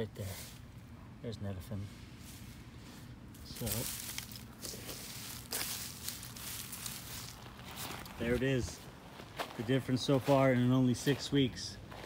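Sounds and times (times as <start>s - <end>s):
dry mulch and soil scuffing: 0.2s - 0.7s, 1.9s - 12.0s
sharp crunch: 3.4s - 8.2s.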